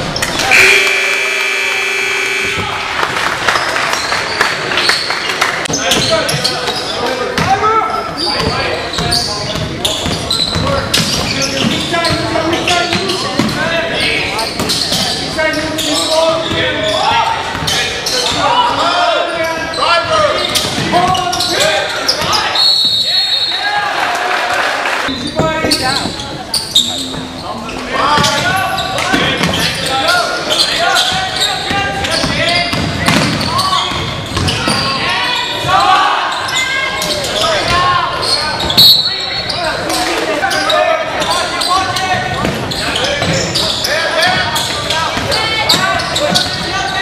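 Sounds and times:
voices of players and spectators: 0.0 - 47.0.

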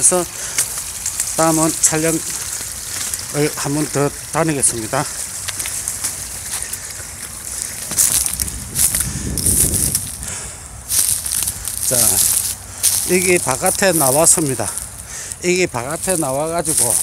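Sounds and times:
man talking: 0.0 - 0.5, 1.3 - 2.5, 3.3 - 5.2, 11.8 - 12.4, 13.0 - 17.0
dry reeds rustling and crackling: 0.0 - 17.0
microphone handling noise: 7.7 - 13.1.

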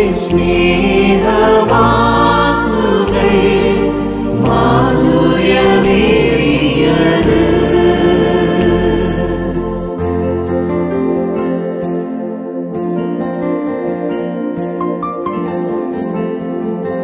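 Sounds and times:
group singing in harmony: 0.0 - 10.3
instrumental backing music: 0.0 - 17.0.

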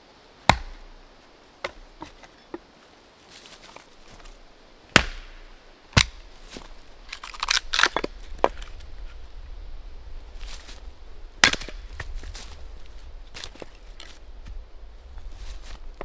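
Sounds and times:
axe chopping wood: 0.4 - 0.9, 1.6 - 2.3, 4.9 - 6.7, 11.4 - 12.1.

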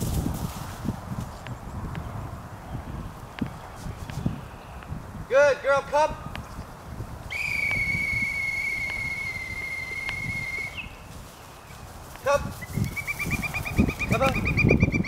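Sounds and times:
dog whistle long blast: 7.3 - 10.8
trilled whistle blast: 7.3 - 10.8.

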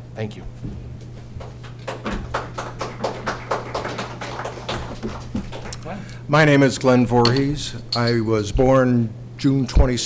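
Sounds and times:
low electrical hum: 0.0 - 10.0
audience clapping: 1.4 - 6.0.

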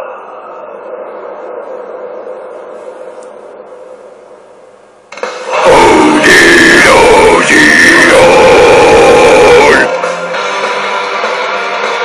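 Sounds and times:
distorted metal scream: 5.4 - 10.0.

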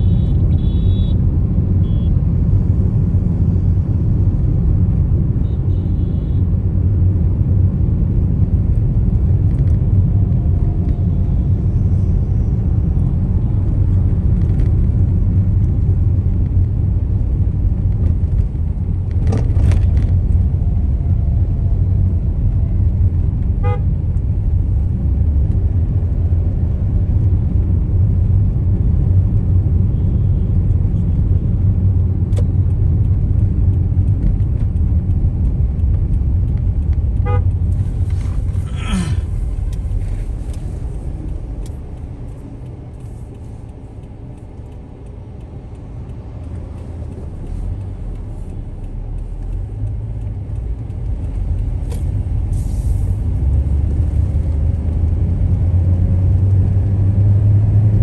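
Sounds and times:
car road and engine rumble: 0.0 - 58.0
loud horn blast: 23.6 - 23.9, 37.2 - 37.5
short horn toots: 37.2 - 37.4.

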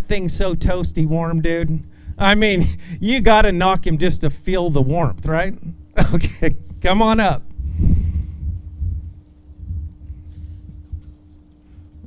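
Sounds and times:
faint steady hum: 0.0 - 12.0
wind buffeting microphone: 7.5 - 11.2.

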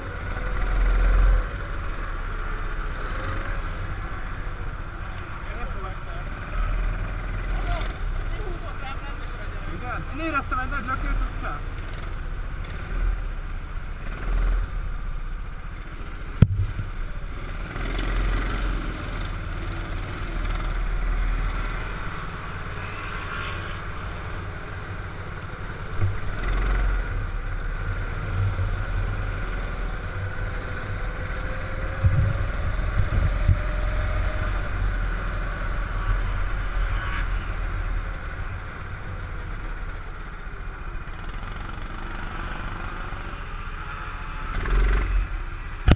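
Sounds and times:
go-kart engine running: 0.0 - 45.9
wind noise on microphone: 31.9 - 34.3.

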